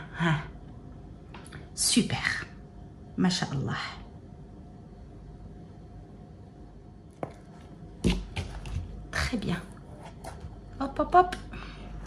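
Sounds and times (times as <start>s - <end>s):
rubbing and scraping handling noises: 7.2s - 10.9s.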